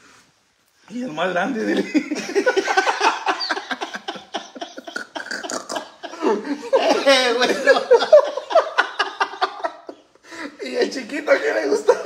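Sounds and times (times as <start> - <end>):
man laughing hard: 1.7 - 10.0.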